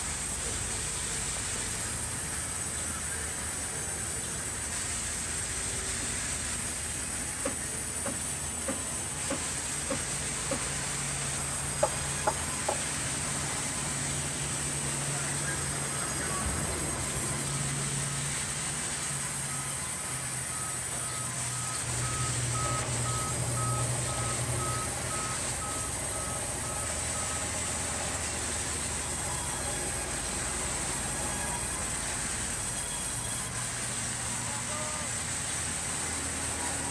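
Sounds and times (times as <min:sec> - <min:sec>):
electronic beeps: 0:19.4 - 0:27.5, 0:28.9 - 0:30.0.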